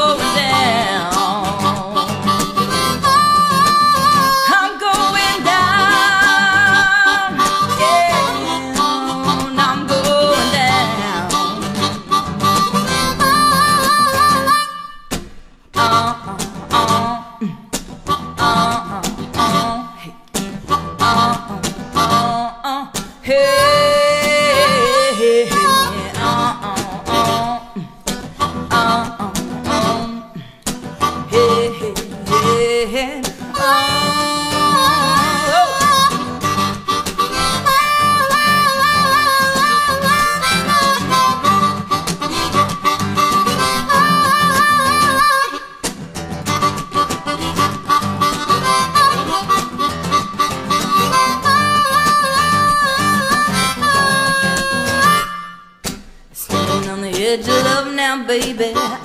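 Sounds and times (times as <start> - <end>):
harmonica solo: 0.0 - 22.6, 23.2 - 59.0
strummed guitars: 0.0 - 59.0.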